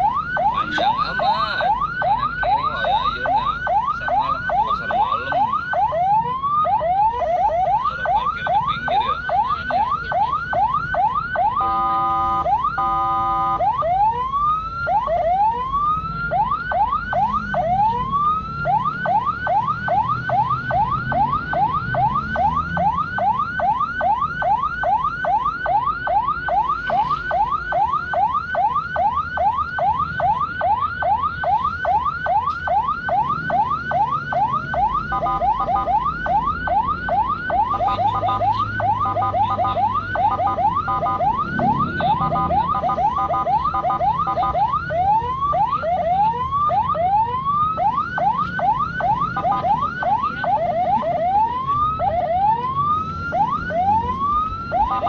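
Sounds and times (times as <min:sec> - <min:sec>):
ambulance siren: 0:00.0 - 0:55.0.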